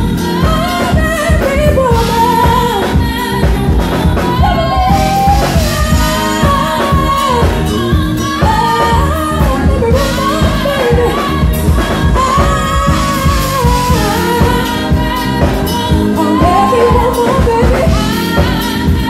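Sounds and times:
loud accompaniment with steady beat: 0.0s - 19.0s
person singing into microphone: 0.0s - 19.0s.

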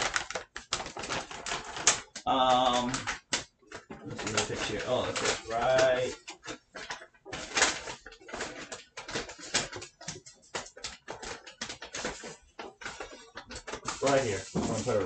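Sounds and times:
paper and bag crinkling: 0.0s - 15.0s.

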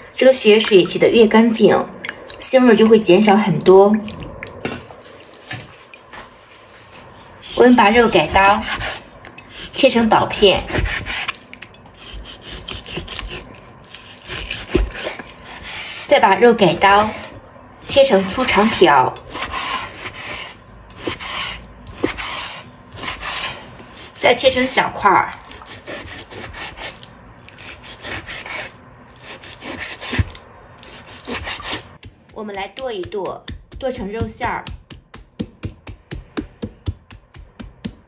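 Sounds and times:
knife slicing meat on wood: 7.4s - 11.4s, 12.0s - 16.1s, 16.8s - 24.2s, 25.4s - 27.0s, 27.6s - 32.3s
knife chopping on wooden board: 14.2s - 15.7s, 21.0s - 23.6s, 31.1s - 38.0s.

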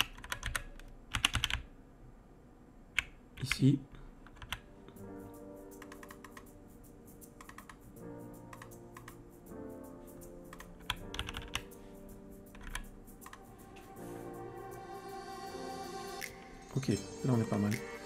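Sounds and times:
typing on computer keyboard: 0.0s - 1.7s, 4.2s - 4.6s, 5.8s - 6.5s, 7.2s - 9.3s, 10.5s - 11.8s, 12.5s - 13.4s
soft background music: 3.5s - 18.0s.

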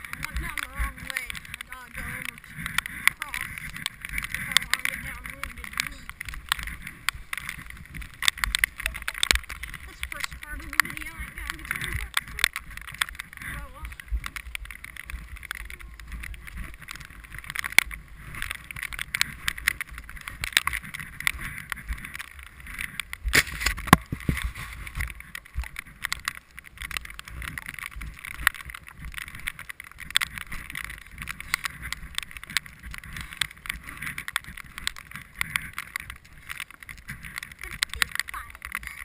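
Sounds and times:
sharp clicks and knocks: 0.0s - 39.0s
skis sliding over packed snow: 0.0s - 39.0s.

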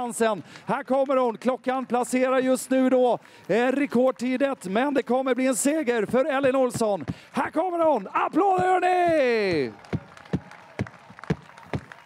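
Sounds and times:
spectators applauding: 0.7s - 6.0s, 8.5s - 12.0s
loud sharp claps: 8.4s - 12.0s.

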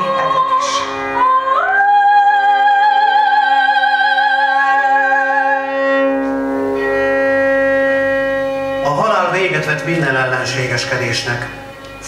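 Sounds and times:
violin holding a long note: 0.0s - 12.0s.

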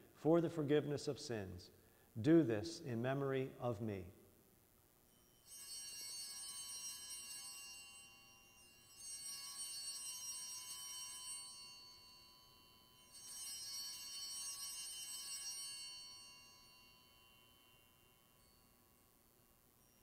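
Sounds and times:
small high-pitched bells ringing: 5.0s - 20.0s.

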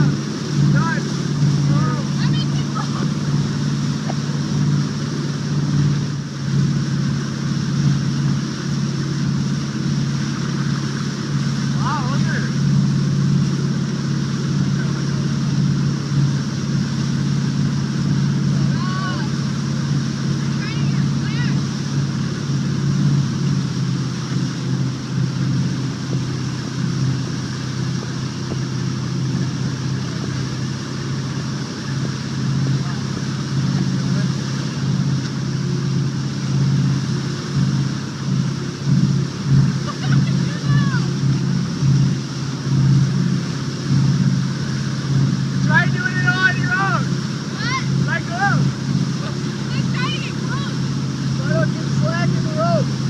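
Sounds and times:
boat engine drone: 0.0s - 53.0s.

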